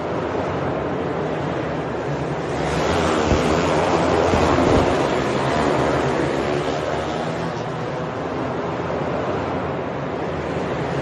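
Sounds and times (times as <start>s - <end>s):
dirt kart engines racing: 0.6s - 9.0s.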